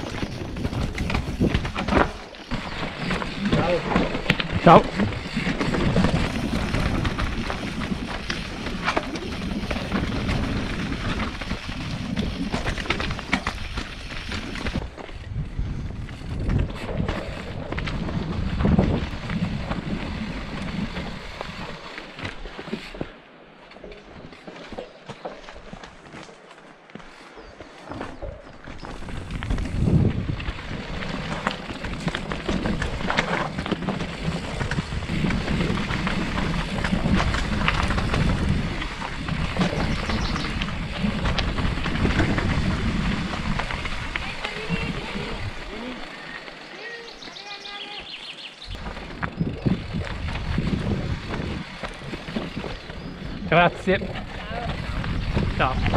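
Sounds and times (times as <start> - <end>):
bike rattling and knocking: 0.0 - 23.1, 27.8 - 46.7, 48.0 - 55.9
bike tyres crunching over stones: 0.0 - 55.9.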